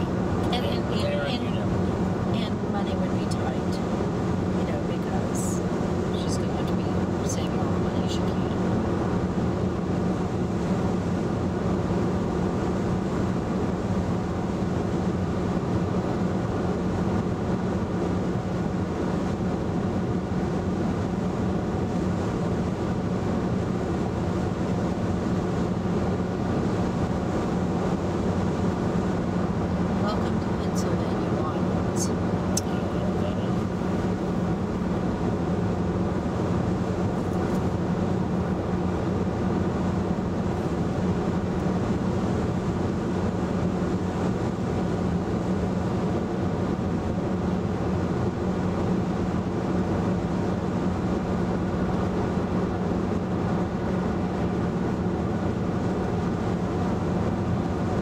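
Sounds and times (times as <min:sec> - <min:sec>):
road and tyre noise inside car: 0:00.0 - 0:58.0.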